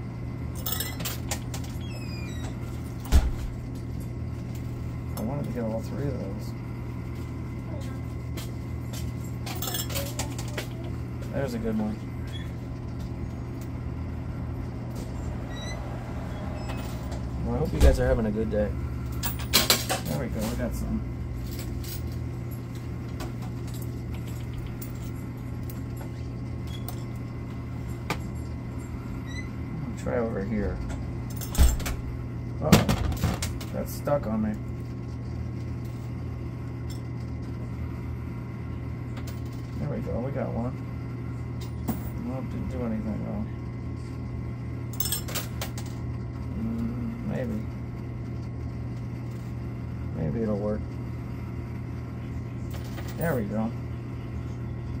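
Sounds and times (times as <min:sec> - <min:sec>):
arcade machine humming: 0:00.0 - 0:55.0
coins clicking and clinking: 0:00.6 - 0:01.8, 0:09.4 - 0:10.5, 0:44.9 - 0:46.0.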